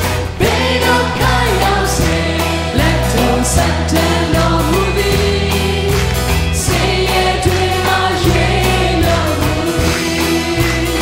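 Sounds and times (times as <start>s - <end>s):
bass guitar: 0.0s - 11.0s
drums keeping a steady beat: 0.0s - 11.0s
group singing worship song: 0.0s - 11.0s.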